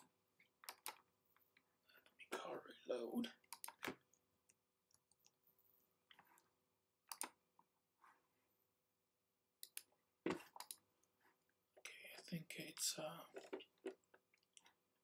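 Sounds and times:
computer mouse clicks: 0.0s - 1.0s, 3.4s - 4.2s, 7.0s - 7.4s, 9.6s - 10.8s.

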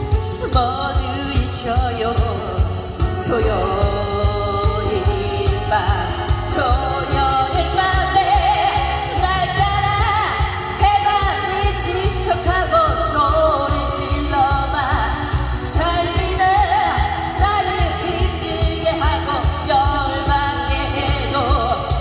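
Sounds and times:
amplified backing music with beat: 0.0s - 22.0s
woman singing into a microphone: 0.0s - 22.0s.

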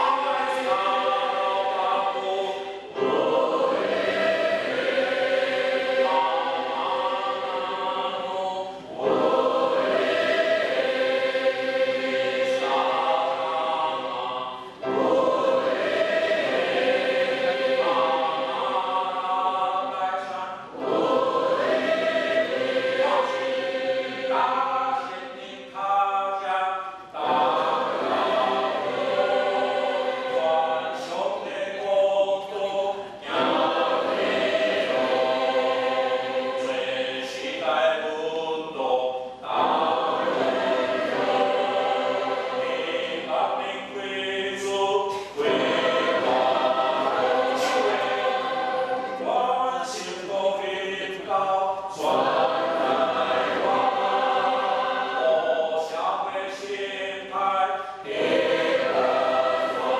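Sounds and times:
church choir singing a hymn: 0.0s - 59.9s.

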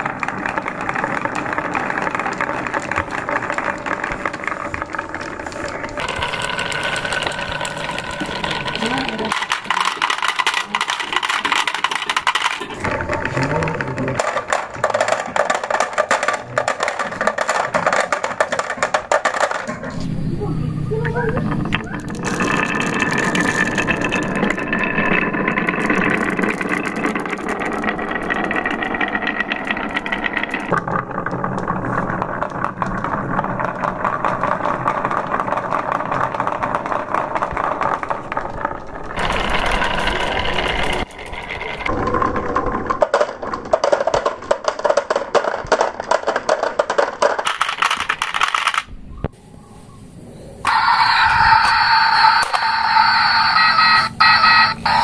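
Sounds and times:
marbles rolling on wooden tracks: 0.0s - 49.1s, 50.6s - 55.0s.

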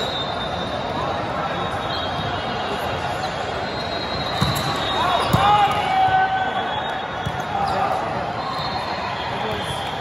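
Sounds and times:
crowd chatter in large hall: 0.0s - 10.0s
sneaker squeaks on court: 4.1s - 5.8s.

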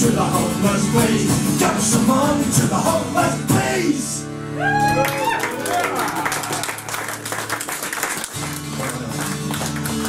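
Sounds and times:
audience clapping: 4.9s - 10.0s.

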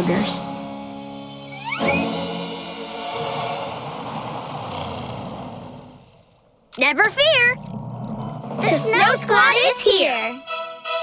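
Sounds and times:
rushing noise: 1.6s - 6.6s.

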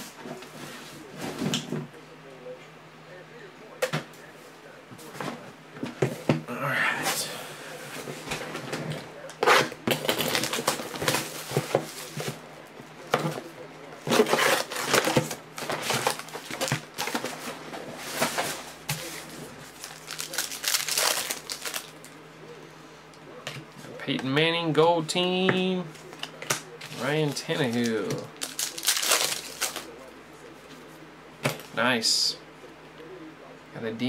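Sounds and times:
foil packs crinkling: 9.4s - 12.4s, 14.0s - 22.2s, 26.0s - 30.0s
foil packs tearing open: 9.4s - 12.4s, 14.1s - 17.4s, 19.8s - 22.0s, 26.1s - 29.9s.

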